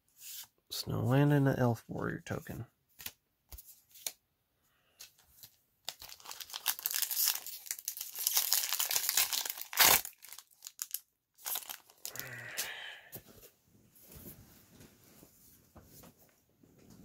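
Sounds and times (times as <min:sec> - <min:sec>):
plastic wrapper crinkling and tearing: 0:05.1 - 0:12.2.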